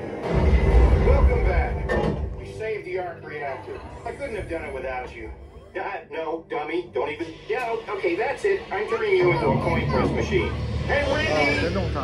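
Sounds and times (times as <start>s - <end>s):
deep rumble: 6.8s - 12.0s.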